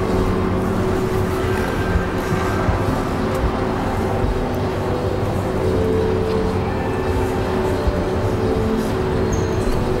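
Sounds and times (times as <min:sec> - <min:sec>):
faint music over loudspeakers: 0:00.0 - 0:10.0.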